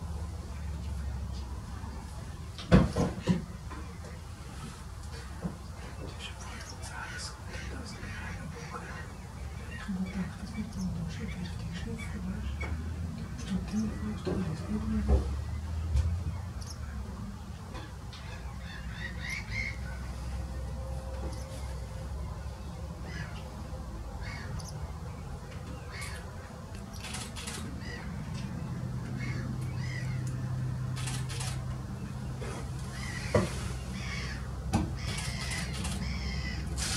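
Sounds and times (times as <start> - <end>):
wild birds calling: 3.2 - 36.9
fainter higher bird calls: 34.0 - 36.9.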